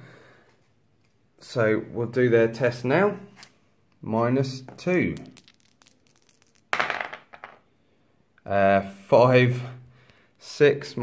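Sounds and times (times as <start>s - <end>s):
dice clattering on a table: 4.7s - 7.7s.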